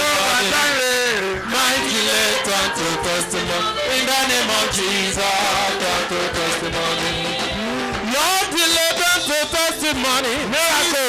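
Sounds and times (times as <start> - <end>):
gospel band music: 0.0 - 11.0
man singing into microphone: 0.0 - 11.0.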